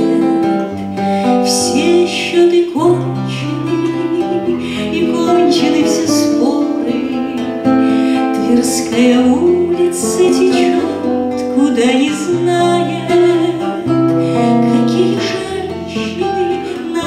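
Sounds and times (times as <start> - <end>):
classical guitar strummed and picked: 0.0 - 17.0
plucked guitar: 0.0 - 17.0.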